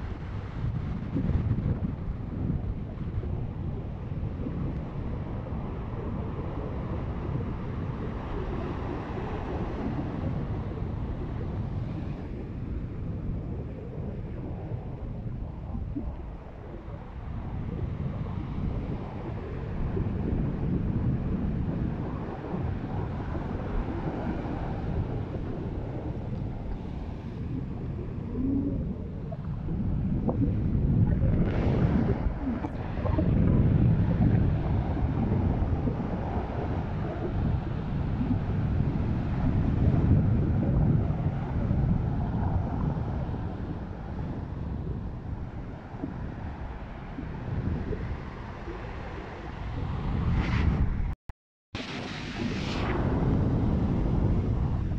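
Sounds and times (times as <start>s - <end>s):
wind buffeting microphone: 0.0s - 51.2s, 51.8s - 54.9s
surf breaking on sand beach: 51.8s - 54.9s.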